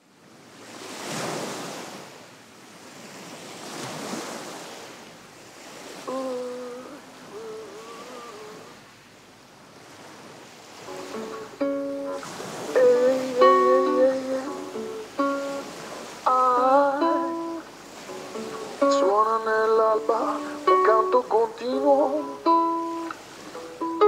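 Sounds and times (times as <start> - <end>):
surf-like rushing noise: 0.0 - 24.0
held wavering notes: 10.9 - 15.7, 16.3 - 19.3
plucked guitar notes: 10.9 - 24.0.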